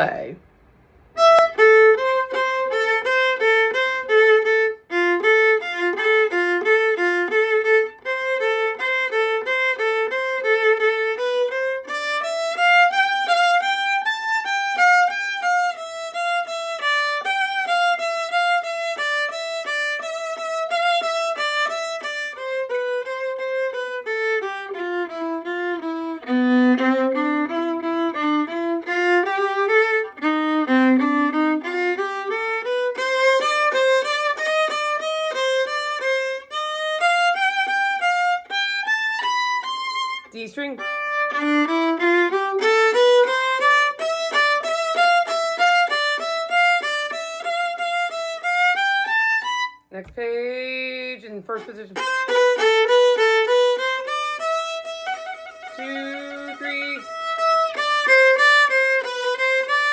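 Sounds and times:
solo violin playing: 1.1s - 50.1s, 50.7s - 59.9s
violin detached bow strokes: 51.6s - 59.9s.

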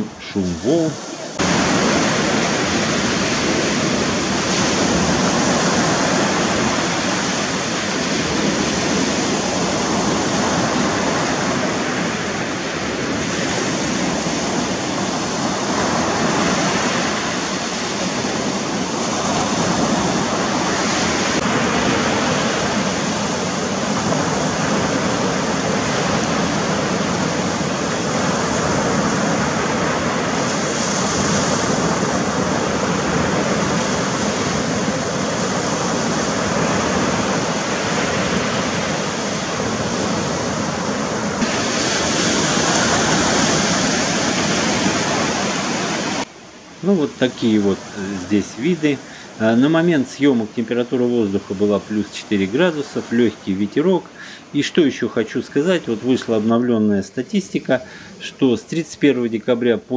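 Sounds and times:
surf washing up beach: 0.0s - 59.9s.

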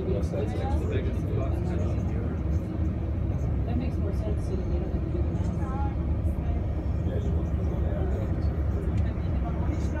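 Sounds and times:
boat engine rumble: 0.0s - 10.0s
faint voices: 0.0s - 10.0s.

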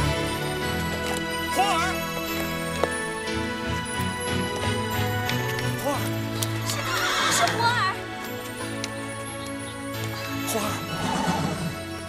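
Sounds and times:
background music: 0.0s - 12.0s
horse whinnying: 6.6s - 7.8s, 10.9s - 11.9s.

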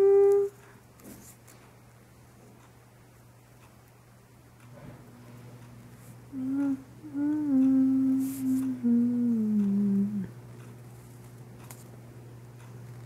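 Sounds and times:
person humming: 0.0s - 0.6s, 6.3s - 10.4s.

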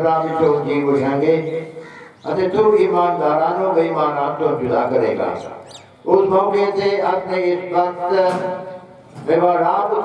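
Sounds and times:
man reciting into a microphone: 0.0s - 10.0s.

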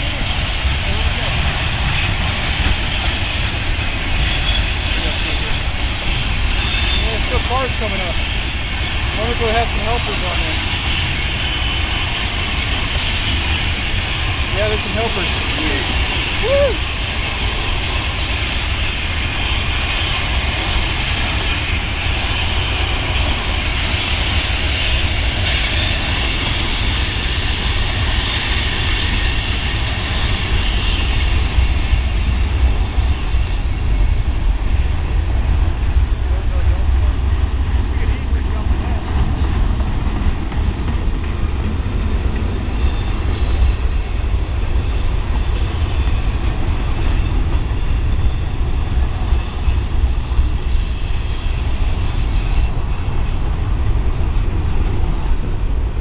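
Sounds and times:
freight train rumbling past: 0.0s - 56.0s.

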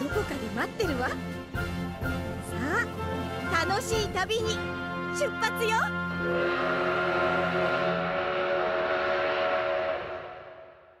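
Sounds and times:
steam locomotive whistle: 5.0s - 11.0s.

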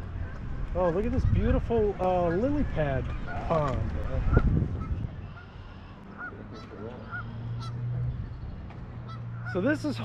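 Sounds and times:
wind rumble on microphone: 0.0s - 6.1s, 7.1s - 9.5s
small birds chirping: 0.1s - 10.0s
geese honking: 2.2s - 8.0s, 9.0s - 10.0s.

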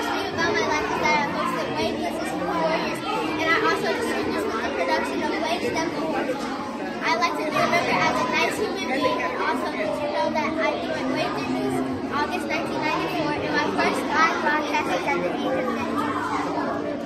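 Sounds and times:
babble of overlapping voices: 0.0s - 17.0s.

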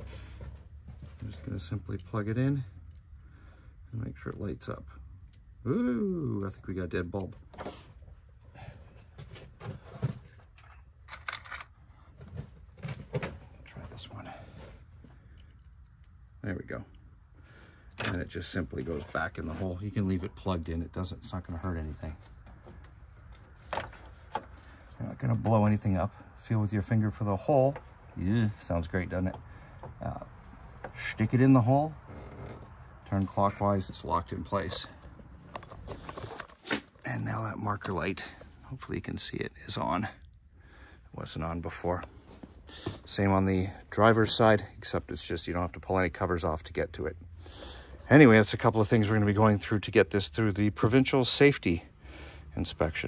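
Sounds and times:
small things clicking and rattling: 9.2s - 13.4s.

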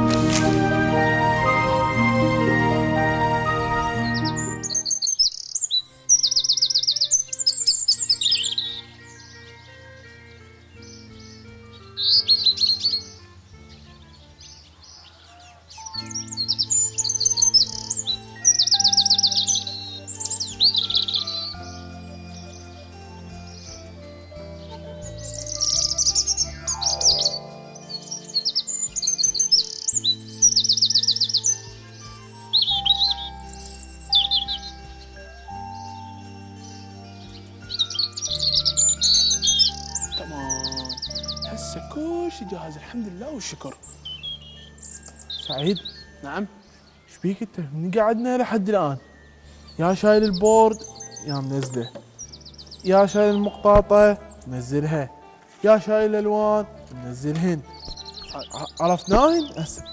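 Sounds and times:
birdsong chirps and trills: 0.0s - 59.9s
soft music with low held notes: 0.0s - 59.9s.

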